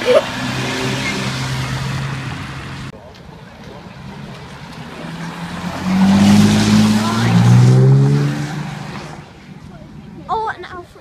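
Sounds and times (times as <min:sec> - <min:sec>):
car engine accelerating past: 0:03.9 - 0:09.4.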